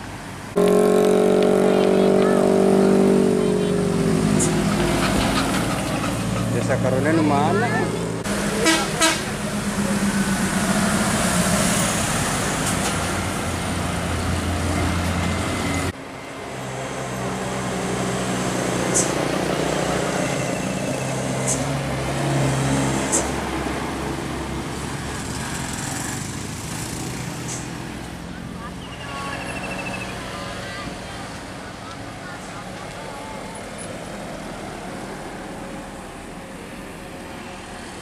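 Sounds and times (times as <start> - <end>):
bus engine drone: 0.0 - 38.0.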